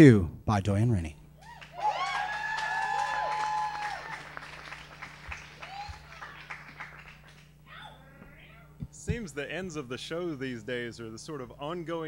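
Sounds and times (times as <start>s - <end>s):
audience applauding: 1.4s - 7.6s
crowd cheering and whooping: 1.4s - 8.6s.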